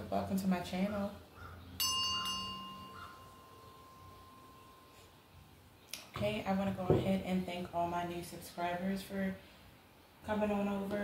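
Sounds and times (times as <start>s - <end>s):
metal hand bell ringing: 1.8s - 5.1s.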